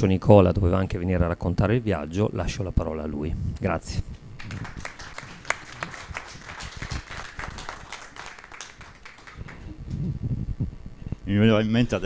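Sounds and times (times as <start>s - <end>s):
audience clapping: 4.4s - 9.9s.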